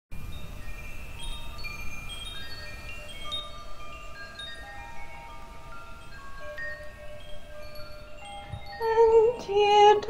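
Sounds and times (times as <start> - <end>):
wind chimes ringing: 0.2 - 10.0.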